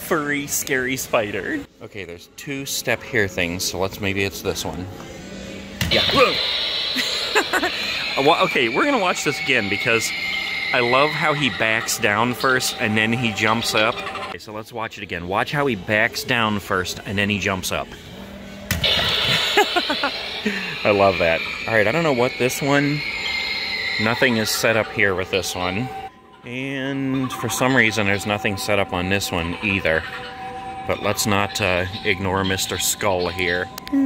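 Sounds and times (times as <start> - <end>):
high-pitched tone with hiss: 5.9 - 14.3, 18.8 - 34.0.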